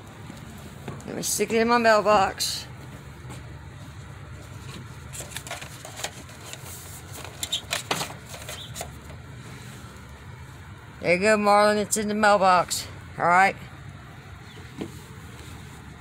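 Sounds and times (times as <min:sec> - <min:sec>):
paper envelope rustling: 0:04.4 - 0:09.2.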